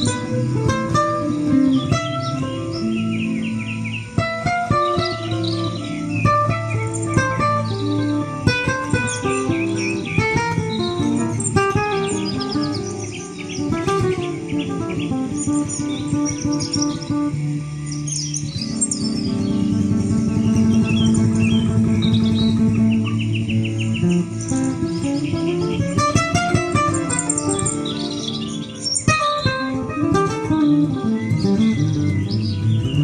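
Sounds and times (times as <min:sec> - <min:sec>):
acoustic guitar picking: 0:00.0 - 0:33.0
bird trill: 0:00.0 - 0:33.0
birds chirping: 0:00.0 - 0:33.0.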